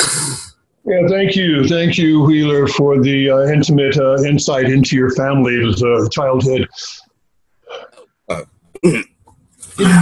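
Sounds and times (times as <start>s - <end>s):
man clearing throat: 7.7s - 9.2s
man coughing: 7.7s - 9.2s.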